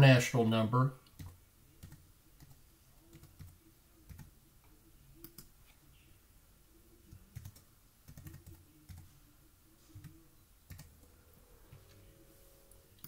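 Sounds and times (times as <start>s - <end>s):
faint keyboard typing: 1.0s - 5.9s, 6.9s - 9.2s, 9.8s - 12.1s.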